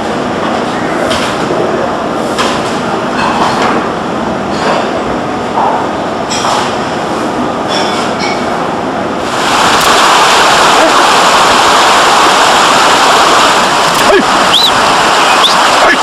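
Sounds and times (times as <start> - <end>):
stream rushing over rocks: 9.2 - 16.0.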